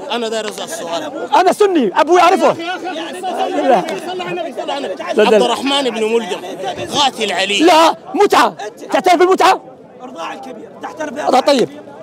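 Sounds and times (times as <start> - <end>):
men talking in a crowd: 0.0 - 12.0.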